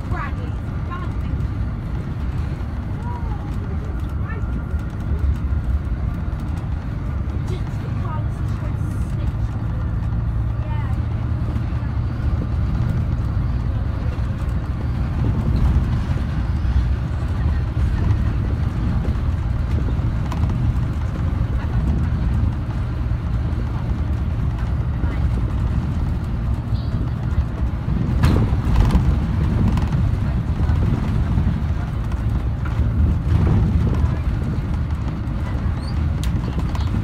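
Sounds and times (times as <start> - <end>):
bus engine and road rumble: 0.0 - 37.0.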